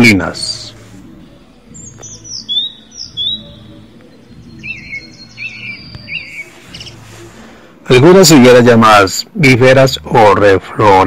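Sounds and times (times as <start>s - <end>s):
small birds chirping: 0.0s - 8.0s
soft background music: 0.0s - 11.0s.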